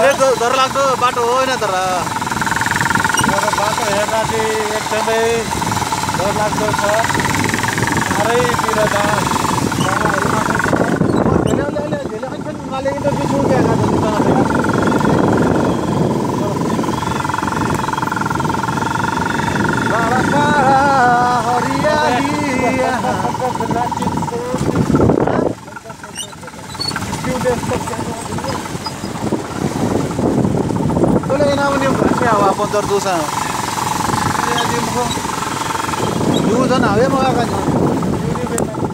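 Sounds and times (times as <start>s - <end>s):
motorcycle engine running: 0.0s - 38.9s
wind rushing over microphone: 0.0s - 38.9s.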